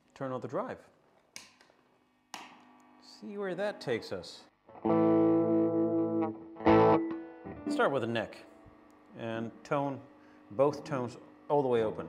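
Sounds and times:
faint steady hum: 0:07.5 - 0:12.0.

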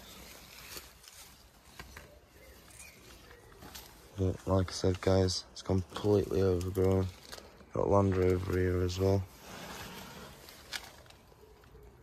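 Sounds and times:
rustling through vegetation: 0:00.0 - 0:12.0.

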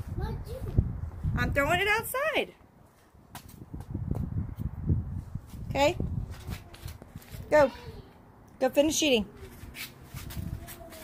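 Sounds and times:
wind rumble on microphone: 0:00.0 - 0:02.1, 0:03.4 - 0:07.6, 0:10.1 - 0:11.0.

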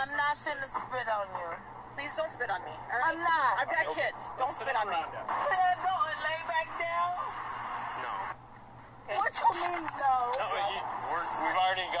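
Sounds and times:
woman and police officers talking: 0:00.0 - 0:07.4, 0:09.1 - 0:12.0
steady background noise: 0:00.0 - 0:12.0.

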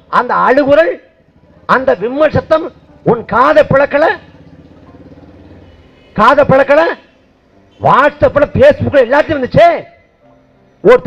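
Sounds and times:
faint engine hum: 0:00.0 - 0:07.9
speech: 0:07.8 - 0:09.9.

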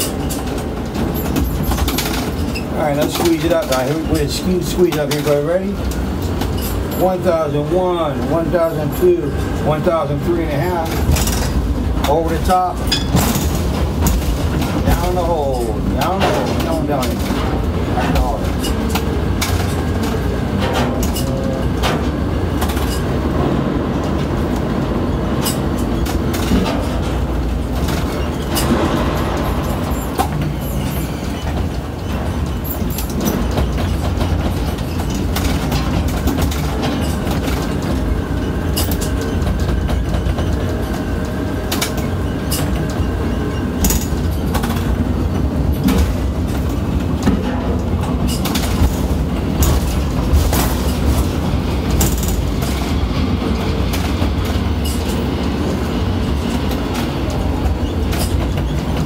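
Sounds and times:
crane machinery rumble: 0:00.0 - 0:59.0.

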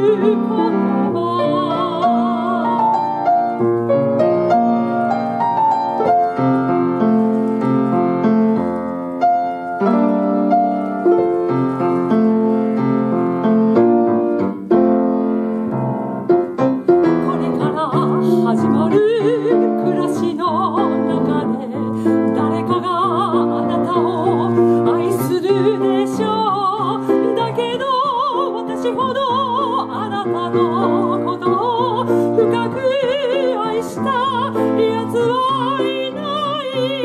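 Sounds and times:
woman singing with vibrato: 0:00.0 - 0:03.2, 0:17.1 - 0:37.0
grand piano playing: 0:00.0 - 0:37.0.

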